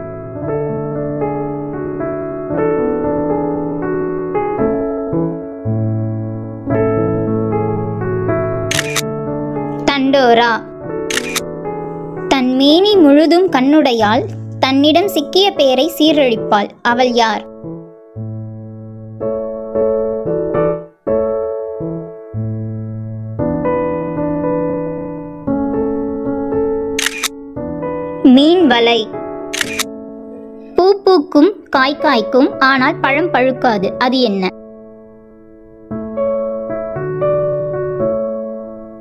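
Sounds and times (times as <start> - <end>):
gentle electric piano music: 0.0 - 39.0
hissy shutter-like effect: 8.7 - 9.1, 11.1 - 11.5, 27.0 - 27.3, 29.5 - 29.9
sharp click: 8.7 - 9.1, 11.1 - 11.5, 27.0 - 27.4, 29.5 - 29.9.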